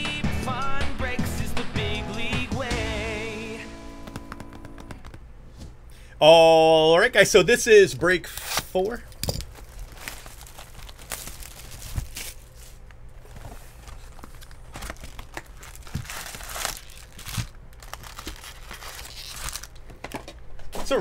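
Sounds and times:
packs knocking against box: 0:04.0 - 0:05.2, 0:13.9 - 0:18.5
plastic wrapping crinkling and tearing: 0:09.3 - 0:20.1.

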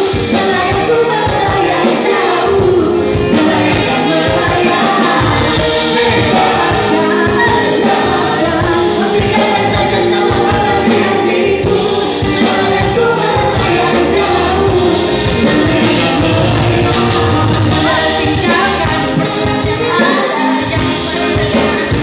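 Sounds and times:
drum beat: 0:00.0 - 0:22.0
live band playing: 0:00.0 - 0:22.0
singers singing together: 0:00.0 - 0:22.0.

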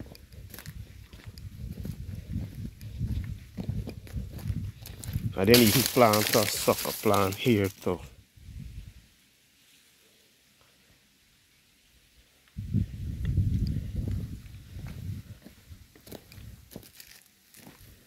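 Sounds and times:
low rumble on microphone: 0:00.0 - 0:05.4, 0:12.6 - 0:15.8
footsteps crunching on dry grass: 0:00.0 - 0:08.0, 0:14.2 - 0:18.0.

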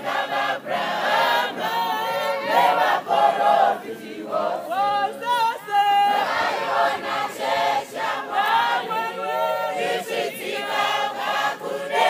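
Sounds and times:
choir singing a hymn unaccompanied: 0:00.0 - 0:12.0.

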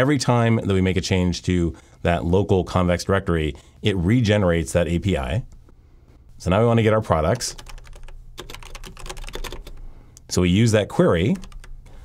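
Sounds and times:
computer keyboard typing: 0:07.3 - 0:09.8, 0:11.2 - 0:11.9.

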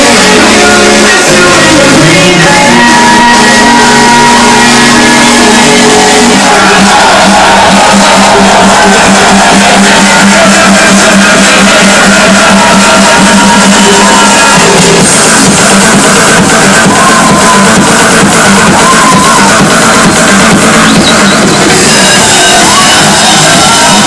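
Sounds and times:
crowd shouting: 0:00.0 - 0:24.0
loud house music: 0:00.0 - 0:24.0.

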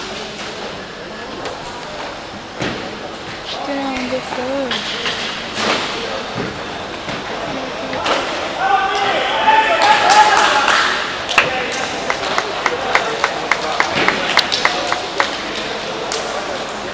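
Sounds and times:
voices shouting and chattering: 0:00.0 - 0:16.9.

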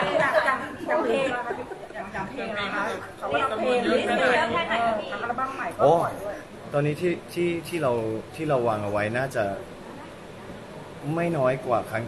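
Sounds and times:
people talking: 0:00.0 - 0:09.6, 0:11.0 - 0:12.0.

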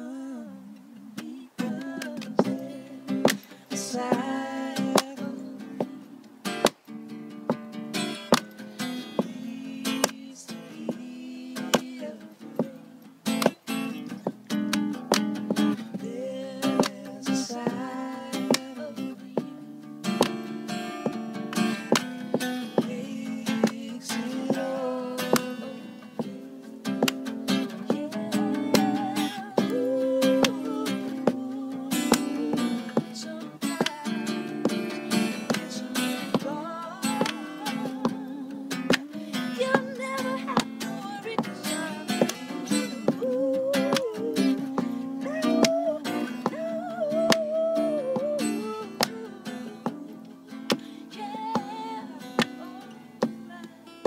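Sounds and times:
acoustic guitar strumming: 0:00.0 - 0:54.0
hands clapping: 0:03.2 - 0:03.5, 0:05.0 - 0:05.2, 0:13.3 - 0:13.6, 0:14.6 - 0:15.8, 0:16.7 - 0:17.0, 0:18.4 - 0:18.7, 0:21.1 - 0:22.1, 0:23.6 - 0:23.8, 0:27.0 - 0:28.0, 0:28.7 - 0:30.7, 0:33.7 - 0:34.0, 0:35.4 - 0:36.5, 0:37.1 - 0:38.2, 0:38.9 - 0:39.1, 0:42.1 - 0:43.2, 0:43.8 - 0:46.6, 0:47.2 - 0:47.5, 0:49.0 - 0:49.3
hand percussion: 0:12.6 - 0:19.5, 0:20.1 - 0:50.8.

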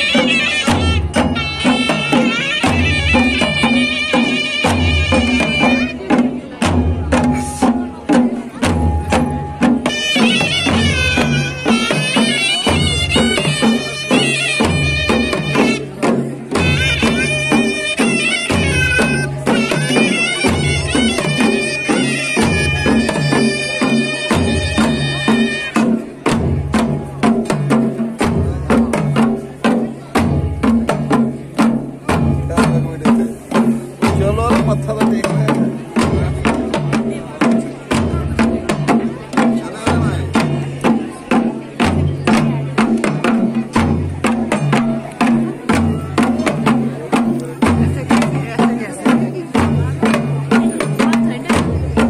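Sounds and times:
reedy wind instrument melody: 0:00.0 - 0:06.2, 0:09.0 - 0:26.1
drums beating steady rhythm: 0:00.0 - 0:52.0.

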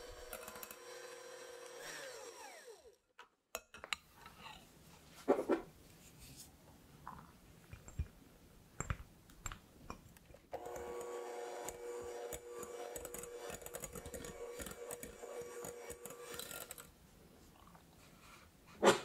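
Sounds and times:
electric hand mixer running: 0:00.0 - 0:03.0, 0:10.6 - 0:16.8.

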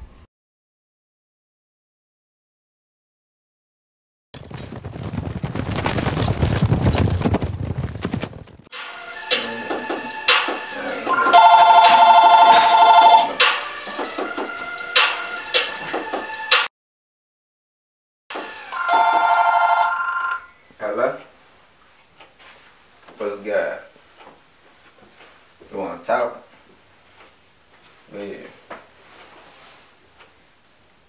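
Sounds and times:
bright steady tones: 0:08.8 - 0:14.9, 0:18.4 - 0:20.6
phone warbling ringtone: 0:10.8 - 0:13.4, 0:18.4 - 0:20.6.

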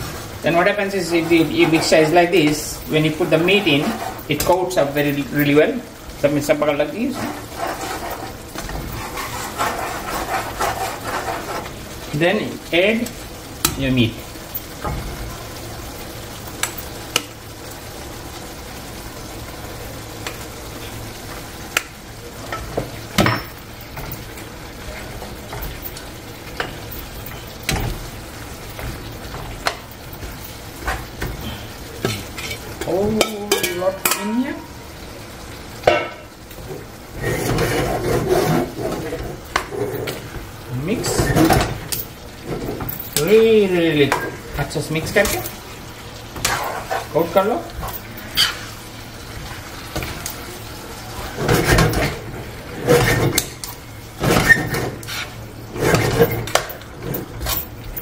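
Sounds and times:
meat sizzling in a pan: 0:00.0 - 0:58.0
metal spoon scraping a pan: 0:00.6 - 0:05.3, 0:06.8 - 0:11.8, 0:29.6 - 0:34.4, 0:37.2 - 0:40.3, 0:46.4 - 0:48.9, 0:54.2 - 0:57.6.

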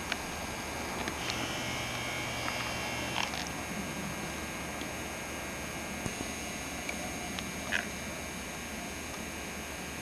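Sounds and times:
low hum: 0:00.0 - 0:10.0
small electric motor whining: 0:00.9 - 0:10.0.

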